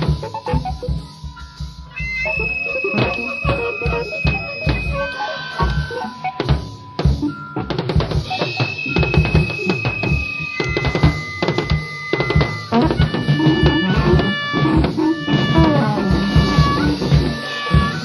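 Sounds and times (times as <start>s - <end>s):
drum kit: 0.0s - 18.0s
rock band playing: 1.9s - 18.0s.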